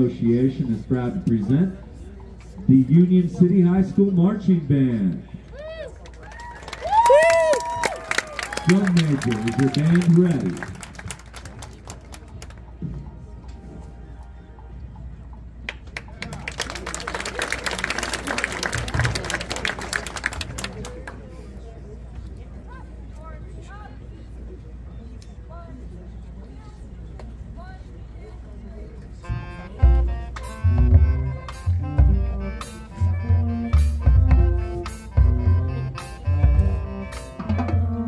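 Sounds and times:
crowd murmur: 0:00.0 - 0:38.0
crowd cheering and clapping: 0:05.5 - 0:12.6, 0:15.6 - 0:21.2
marching band brass and drums: 0:29.2 - 0:38.0.

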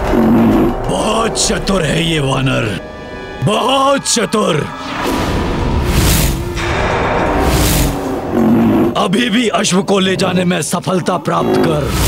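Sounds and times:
roar-like rumbling whoosh: 0:00.0 - 0:03.6, 0:04.7 - 0:09.3
dramatic background music: 0:00.0 - 0:12.0.

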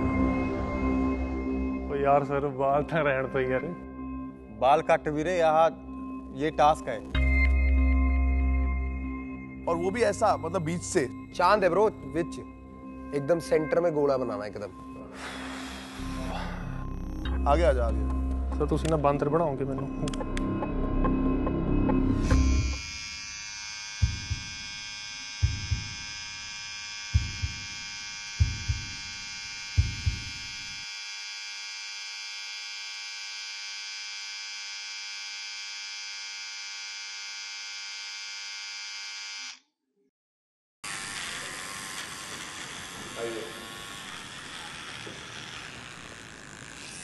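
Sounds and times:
steady high buzz: 0:22.1 - 0:39.5
electric hair clippers shaving: 0:22.1 - 0:39.7, 0:40.8 - 0:47.0.

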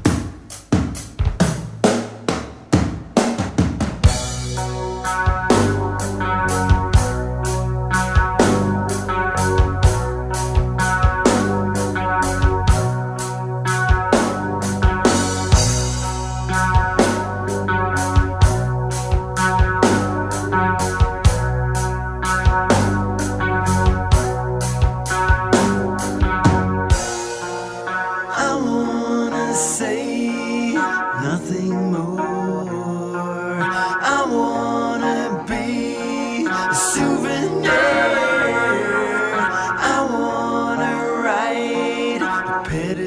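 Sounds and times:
rock drum beat: 0:00.0 - 0:28.0.

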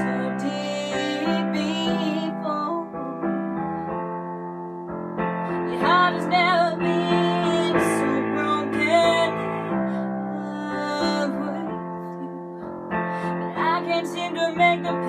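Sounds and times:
woman singing with vibrato: 0:00.0 - 0:03.2, 0:05.5 - 0:12.6, 0:13.2 - 0:15.0
held piano chords: 0:00.0 - 0:15.0.

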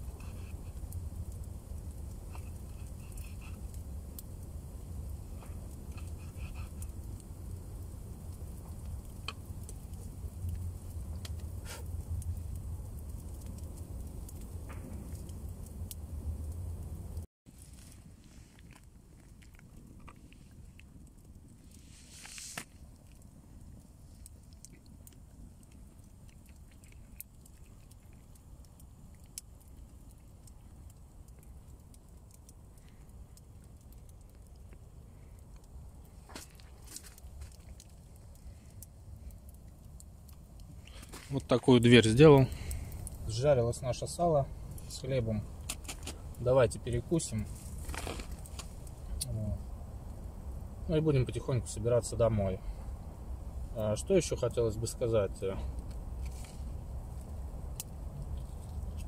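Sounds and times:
low rumble: 0:00.0 - 0:17.3
wood fire crackling and popping: 0:00.0 - 0:59.0.

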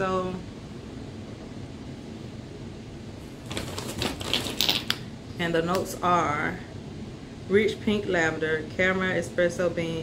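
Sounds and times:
air conditioner humming: 0:00.0 - 0:10.0.

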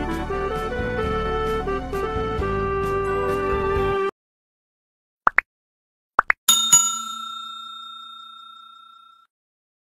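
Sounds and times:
bell ding ringing: 0:06.5 - 0:09.3.

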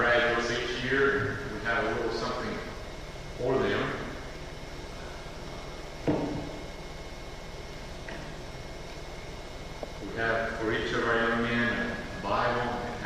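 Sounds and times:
room tone hum and hiss: 0:00.0 - 0:13.0.

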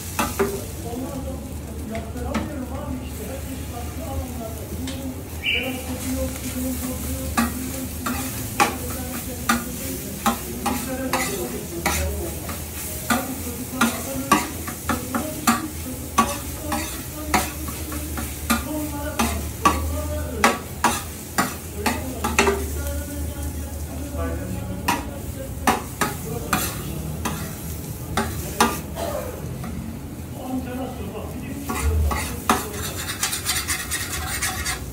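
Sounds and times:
food sizzling on griddle: 0:00.0 - 0:34.9
knife tapping on steel griddle: 0:07.4 - 0:12.0, 0:13.1 - 0:22.7, 0:24.9 - 0:27.4, 0:31.7 - 0:34.7.

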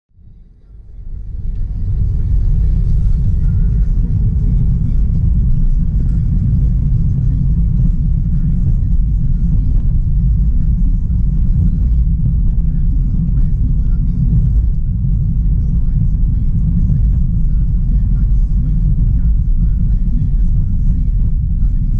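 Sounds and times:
car cabin road and engine rumble: 0:00.2 - 0:21.9.

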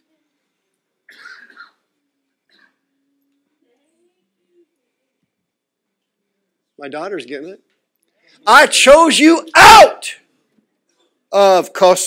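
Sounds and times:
person coughing: 0:01.1 - 0:01.8.

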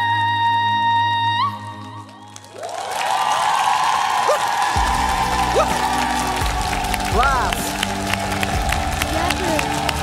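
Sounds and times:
audience applauding and cheering: 0:01.6 - 0:10.0
whoops: 0:01.9 - 0:07.6.

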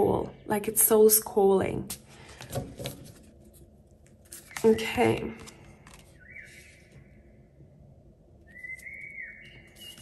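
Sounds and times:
faint high whistling tone: 0:06.2 - 0:07.3, 0:08.4 - 0:10.0.

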